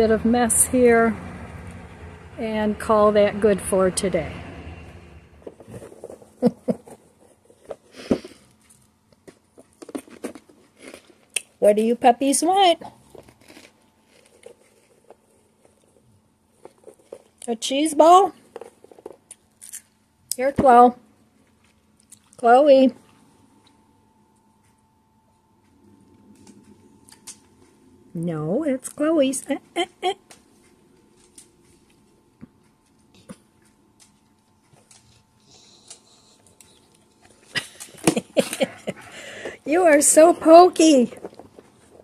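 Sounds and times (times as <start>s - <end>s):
plastic tub rustling and clicking: 9.2s - 11.0s.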